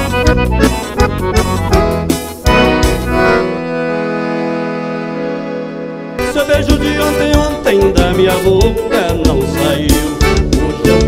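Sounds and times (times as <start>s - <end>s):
accordion dance-band music: 0.0s - 11.0s.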